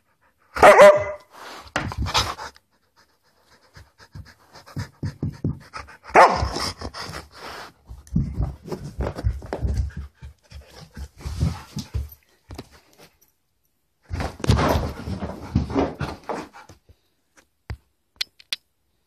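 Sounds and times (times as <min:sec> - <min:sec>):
dog panting hard: 0:01.8 - 0:12.2.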